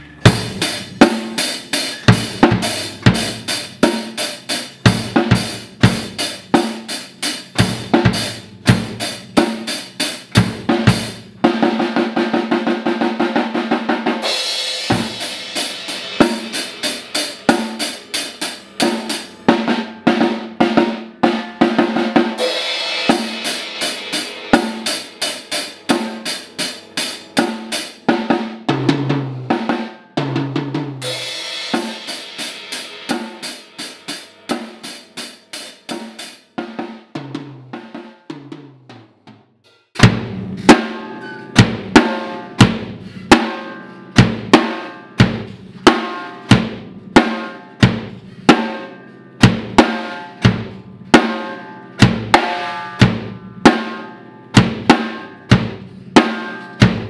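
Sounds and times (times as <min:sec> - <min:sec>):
snare and bass drum groove: 0:00.0 - 0:39.4, 0:40.0 - 0:57.0
tom drum hits: 0:40.0 - 0:57.0.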